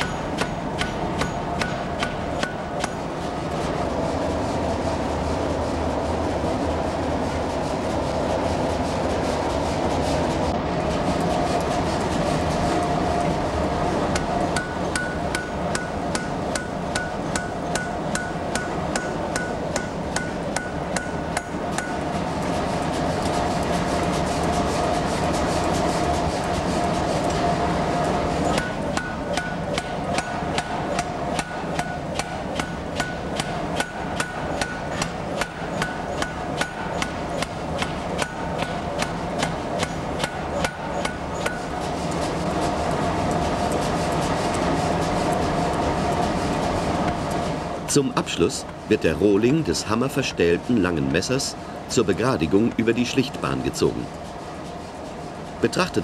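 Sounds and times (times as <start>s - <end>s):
power hammer striking hot iron: 0.0s - 3.1s, 14.1s - 22.0s, 28.5s - 41.8s.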